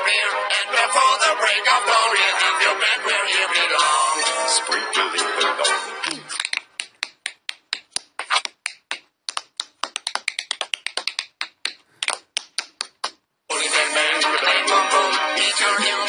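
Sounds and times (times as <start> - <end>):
music: 0.0 - 6.4, 13.5 - 16.0
clipped voice sounds: 2.1 - 6.6, 13.5 - 16.0.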